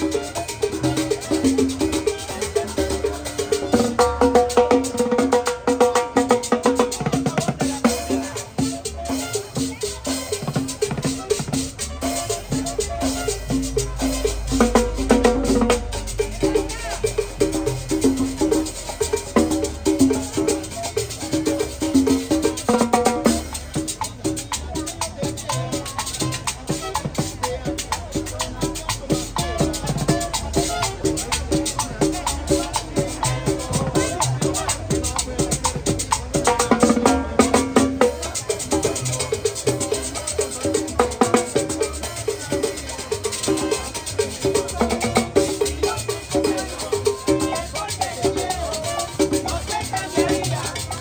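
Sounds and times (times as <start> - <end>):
latin dance music street band: 0.0 - 51.0.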